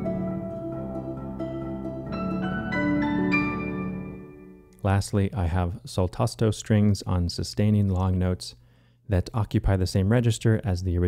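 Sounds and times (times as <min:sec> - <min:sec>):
harp and marimba notes: 0:00.0 - 0:04.5
piano and celesta notes: 0:00.0 - 0:04.7.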